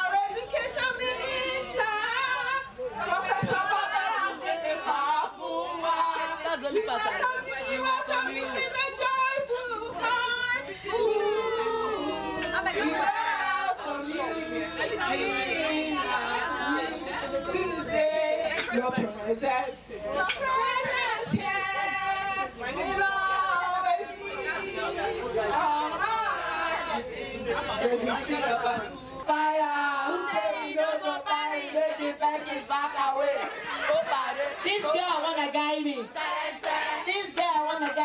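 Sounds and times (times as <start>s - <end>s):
women talking: 6.4s - 36.1s
women laughing: 33.2s - 35.0s.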